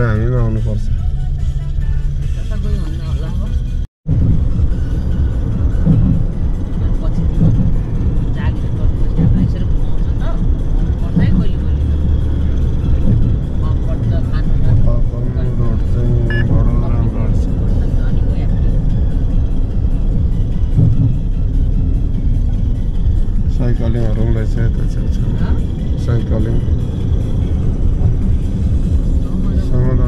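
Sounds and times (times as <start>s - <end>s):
car rumble inside cabin: 0.0s - 30.0s
music: 0.0s - 30.0s.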